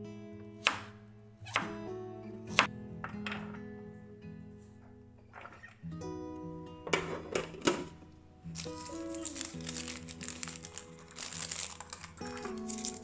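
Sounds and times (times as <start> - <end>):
background music of held notes: 0.0 - 13.0.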